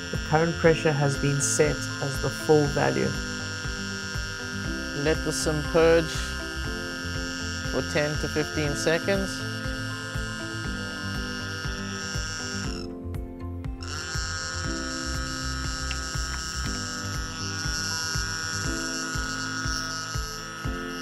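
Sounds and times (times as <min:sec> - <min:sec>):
synth chords over a steady beat: 0:00.0 - 0:21.0.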